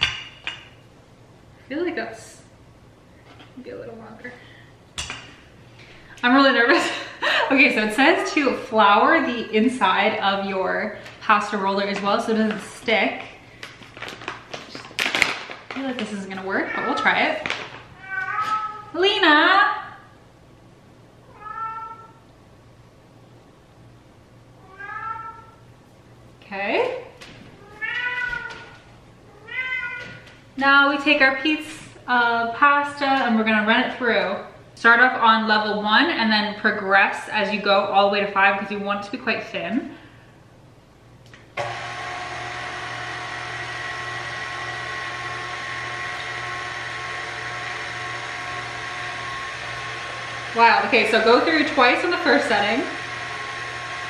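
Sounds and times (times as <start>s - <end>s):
cat meowing: 18.0s - 19.0s, 21.3s - 22.2s, 24.6s - 25.6s, 27.6s - 30.2s
stand mixer motor running: 41.6s - 54.0s.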